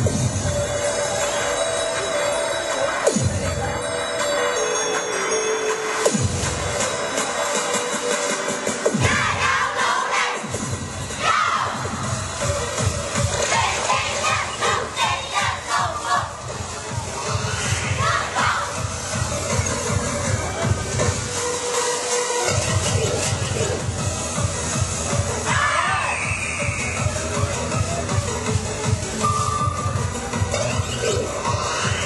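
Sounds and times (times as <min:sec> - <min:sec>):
music with a beat: 0:00.0 - 0:09.3, 0:10.4 - 0:25.5, 0:26.4 - 0:32.0
children shouting: 0:11.2 - 0:11.8, 0:18.0 - 0:18.8.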